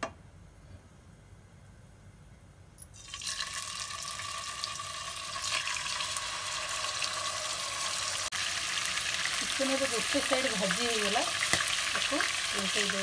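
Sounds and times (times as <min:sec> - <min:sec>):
chicken sizzling in hot oil: 0:03.0 - 0:13.0.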